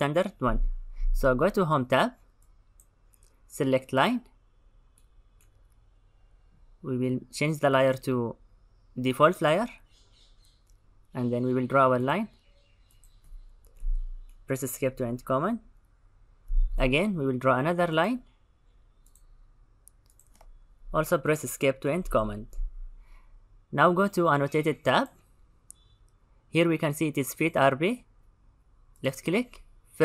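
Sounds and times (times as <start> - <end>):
computer mouse clicks: 2.2 - 3.4, 12.8 - 14.5, 19.0 - 20.6
faint computer mouse clicks: 19.0 - 20.6.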